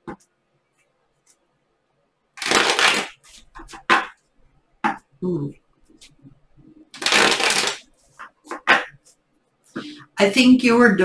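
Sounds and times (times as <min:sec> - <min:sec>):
cards riffle shuffling: 0:02.4 - 0:04.0, 0:07.0 - 0:08.9
card rustles: 0:07.0 - 0:08.9.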